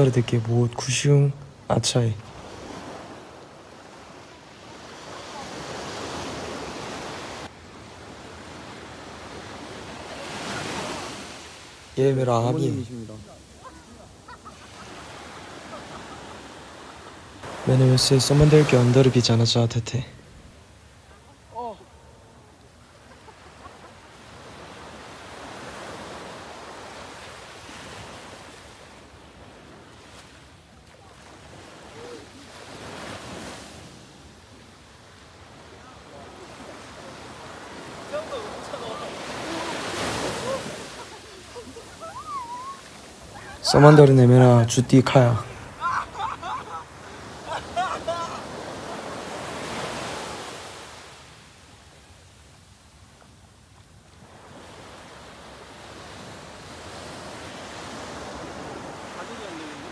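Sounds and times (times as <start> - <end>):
surf washing up a sandy beach: 0.0 - 59.9.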